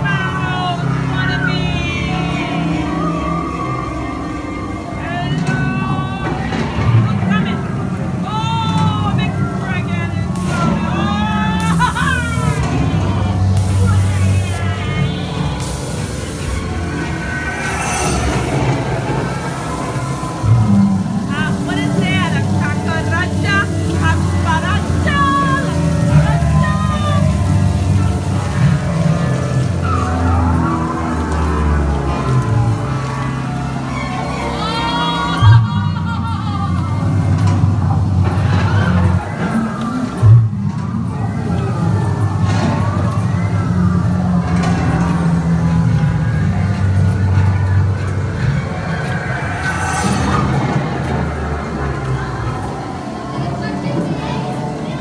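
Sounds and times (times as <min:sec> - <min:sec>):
music: 0:00.0 - 0:55.0
steady low rumble: 0:44.0 - 0:53.9.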